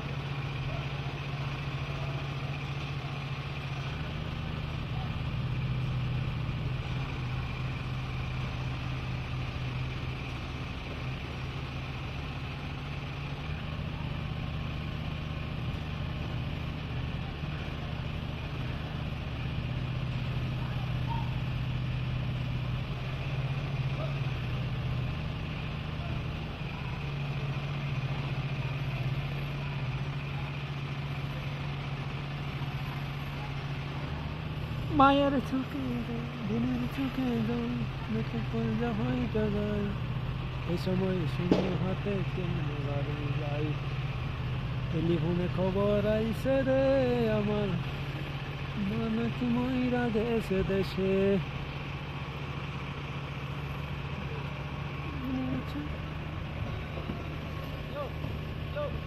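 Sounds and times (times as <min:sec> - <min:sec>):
engine running with low hum: 0:00.0 - 0:59.0.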